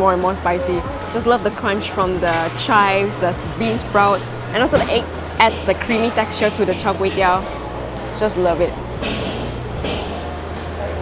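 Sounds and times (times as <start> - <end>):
indistinct background voices: 0.0 - 11.0
low hum: 0.0 - 11.0.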